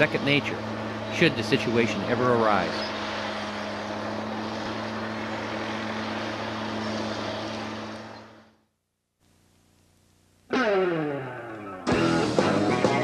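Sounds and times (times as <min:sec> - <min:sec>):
bulldozer diesel engine running: 0:00.0 - 0:08.6.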